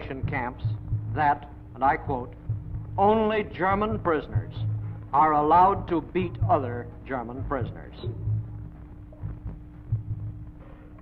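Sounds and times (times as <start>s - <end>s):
dull low thumps: 0.0s - 11.0s
steady low hum: 0.0s - 11.0s.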